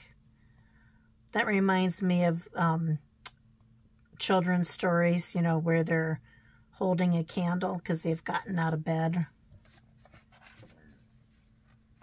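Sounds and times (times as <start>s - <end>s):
book page turning: 9.5s - 12.0s
hand brushing over paper: 9.6s - 12.0s.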